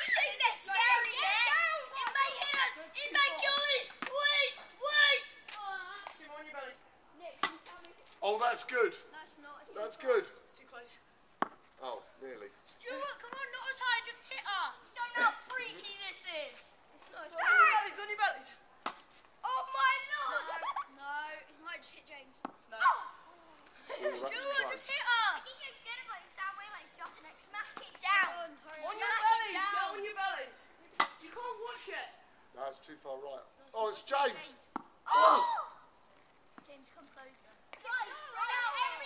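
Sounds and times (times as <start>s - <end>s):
children shouting excitedly: 0.0s - 6.0s, 12.8s - 16.2s, 17.3s - 18.4s, 19.4s - 21.0s, 28.0s - 30.6s, 35.0s - 35.9s, 37.8s - 39.0s.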